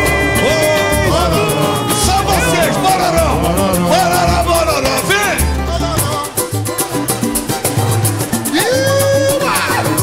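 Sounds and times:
person singing: 0:00.0 - 0:06.5, 0:08.5 - 0:10.0
bass line: 0:00.0 - 0:10.0
cavaquinho and acoustic guitars: 0:00.0 - 0:10.0.

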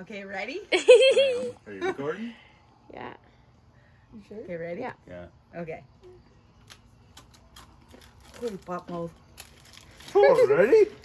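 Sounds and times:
foil snack packet crinkling: 0:06.6 - 0:11.0.

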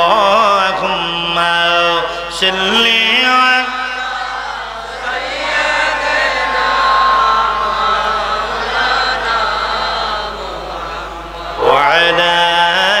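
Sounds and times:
man chanting into a microphone: 0:00.0 - 0:04.1, 0:11.4 - 0:13.0.

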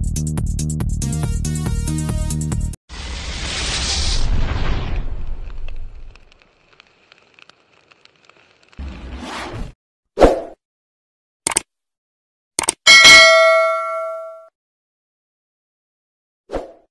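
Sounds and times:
short whoosh: 0:03.0 - 0:06.0
loud pop: 0:03.2 - 0:06.1
sharp clicks: 0:11.5 - 0:11.7, 0:12.6 - 0:12.8
bright bell ding: 0:12.9 - 0:14.5.

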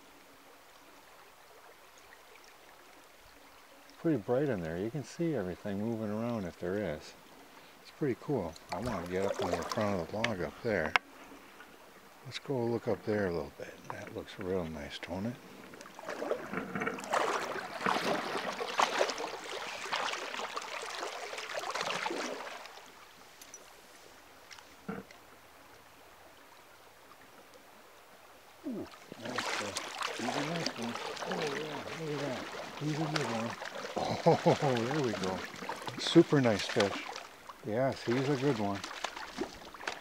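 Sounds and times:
water sloshing and splashing: 0:01.3 - 0:12.2, 0:12.8 - 0:25.3, 0:28.6 - 0:40.0.

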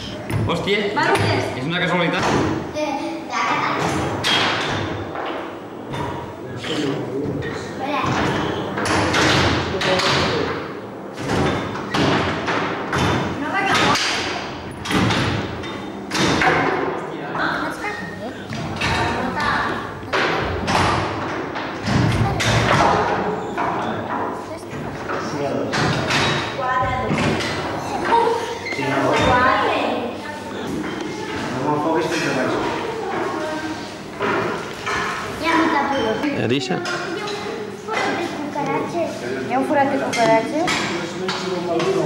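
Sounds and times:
voices talking: 0:16.7 - 0:20.8.

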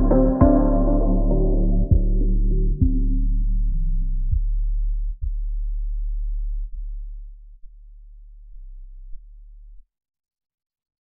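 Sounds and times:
electronic music chords: 0:00.0 - 0:04.0
low bass hum: 0:00.0 - 0:09.8.

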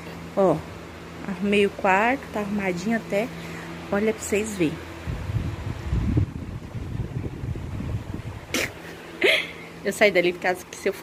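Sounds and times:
fan air blowing on microphone: 0:00.0 - 0:11.0.

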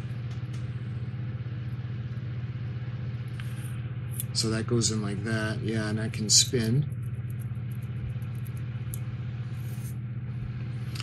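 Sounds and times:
steady low motor hum: 0:00.0 - 0:11.0.

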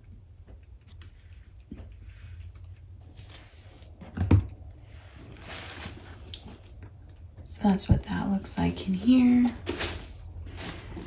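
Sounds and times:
bag rustle: 0:05.1 - 0:06.8, 0:09.0 - 0:11.0.

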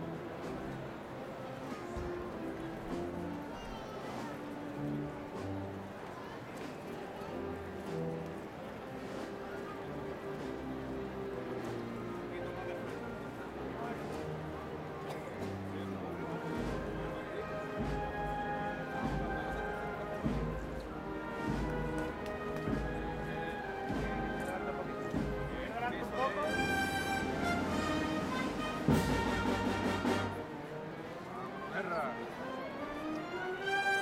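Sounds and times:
band playing slow march: 0:00.0 - 0:34.0
low drum beat: 0:19.0 - 0:24.4, 0:25.1 - 0:25.7.

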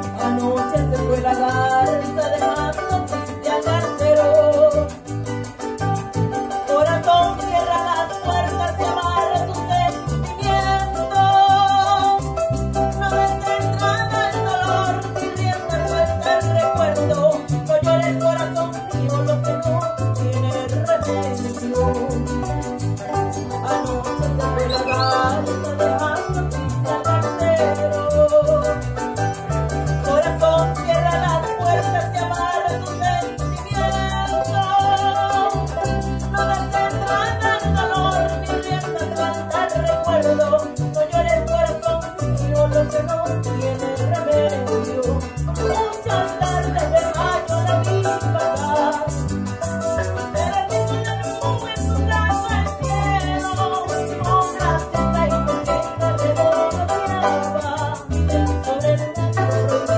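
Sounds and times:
shaker rattle: 0:00.0 - 0:59.9
small guitar strummed: 0:21.8 - 0:33.7, 0:44.6 - 0:59.9.

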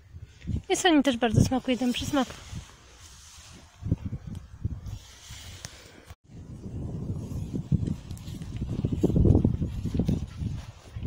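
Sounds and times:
wind buffeting microphone: 0:00.0 - 0:05.6, 0:06.2 - 0:11.0.

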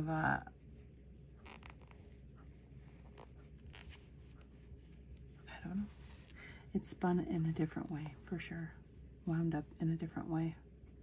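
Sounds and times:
low room hum: 0:00.0 - 0:11.0
fingers rustling yarn and paper: 0:01.4 - 0:08.4.

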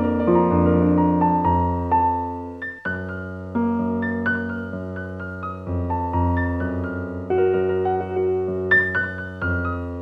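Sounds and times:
slow soft piano music: 0:00.0 - 0:10.0.

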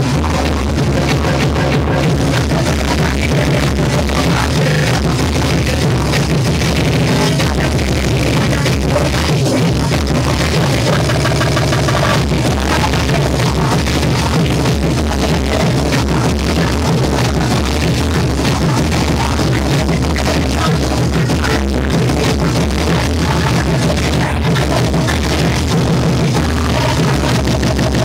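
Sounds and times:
repeating higher pattern: 0:00.0 - 0:18.2
loud electronic breakcore: 0:00.0 - 0:28.0.

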